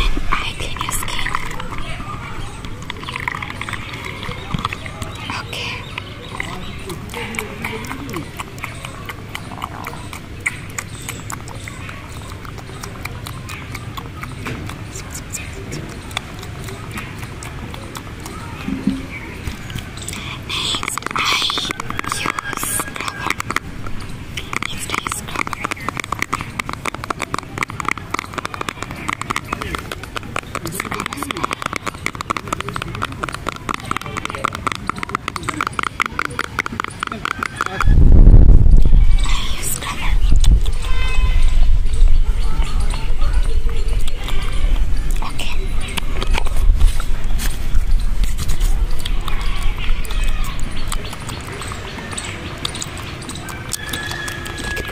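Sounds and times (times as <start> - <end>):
low rustling rumble: 37.8 - 50.0.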